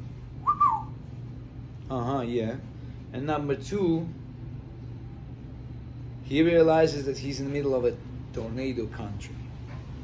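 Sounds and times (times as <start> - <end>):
steady low hum: 0.0 - 10.0
bird whistled call: 0.4 - 1.0.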